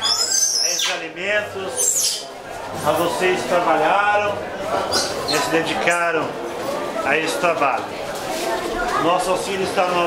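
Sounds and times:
people talking: 0.2s - 10.0s.

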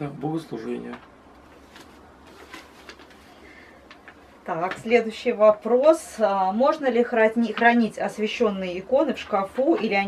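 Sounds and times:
paper rustling: 1.4s - 4.8s.

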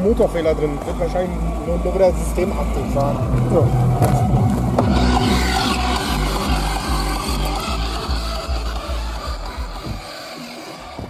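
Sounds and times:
music with heavy bass beat: 0.0s - 11.0s.

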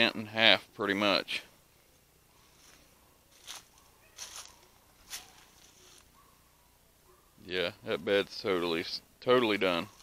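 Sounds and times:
footsteps crunching dry leaves: 2.4s - 6.2s.

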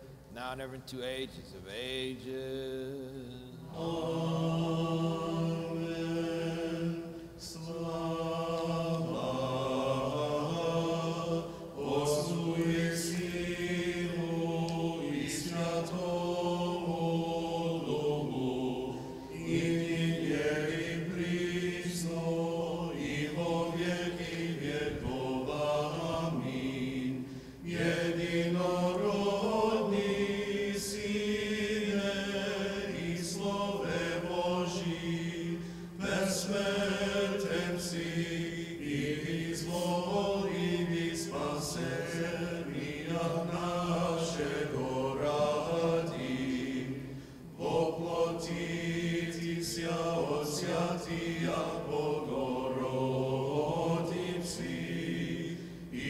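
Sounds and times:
voices singing liturgical chant: 1.1s - 56.0s.

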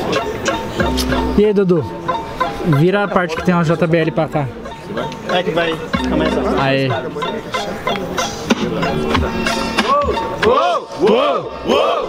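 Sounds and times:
hip-hop beat from speaker: 0.0s - 12.0s.

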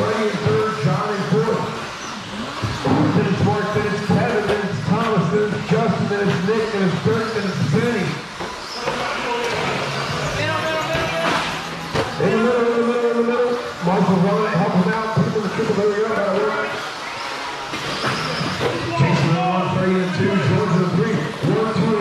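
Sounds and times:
man commentating: 0.0s - 1.8s, 2.8s - 8.2s, 12.2s - 16.8s, 18.8s - 22.0s.

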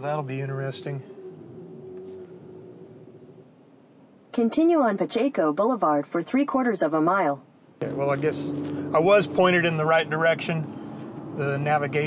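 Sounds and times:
faint hum inside pickup cab: 0.0s - 12.0s.

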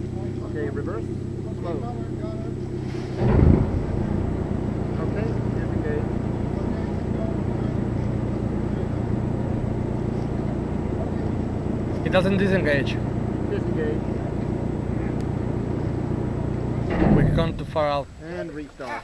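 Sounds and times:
submarine engine low hum: 0.0s - 18.8s.

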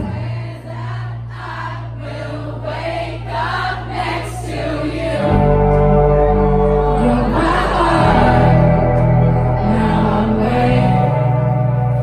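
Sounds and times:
audience singing along: 0.0s - 12.0s
several voices singing: 0.0s - 12.0s
held low bass note: 5.2s - 12.0s.

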